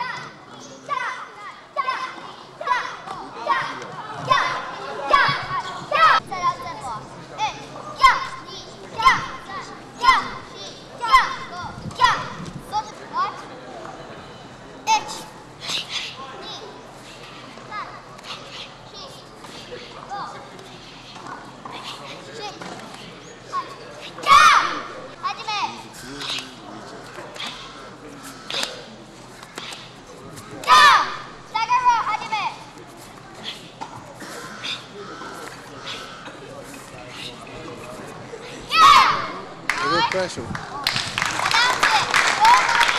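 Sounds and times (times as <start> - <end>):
children shouting together: 0.9 - 12.5, 23.6 - 25.7, 30.6 - 32.6, 38.6 - 40.0, 41.5 - 42.9.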